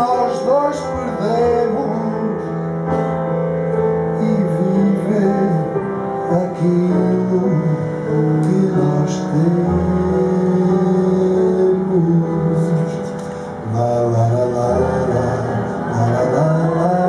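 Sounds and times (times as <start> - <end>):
piano chords: 0.0 - 17.0.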